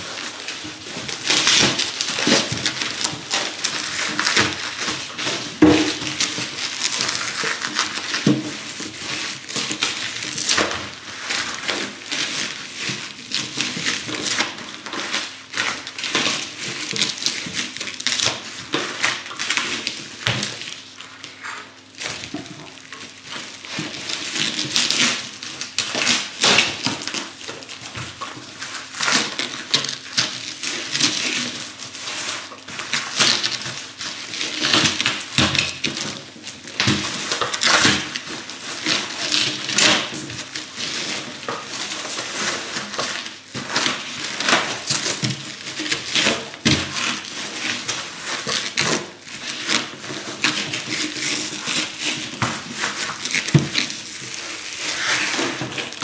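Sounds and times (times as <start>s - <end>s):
plastic wrap rustling and crinkling: 0.0s - 56.0s.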